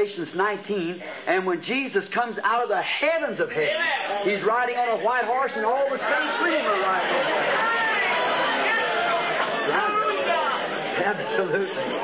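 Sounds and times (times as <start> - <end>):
man preaching: 0.0 - 7.2, 11.0 - 11.9
congregation calling out: 0.0 - 12.0.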